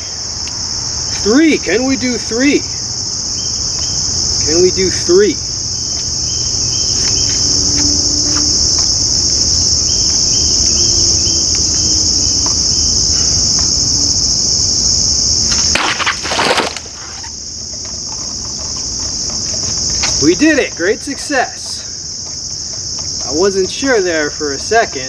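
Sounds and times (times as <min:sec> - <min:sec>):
insect chorus: 0:00.0 - 0:25.0
machete cutting plastic bottles: 0:15.5 - 0:17.2.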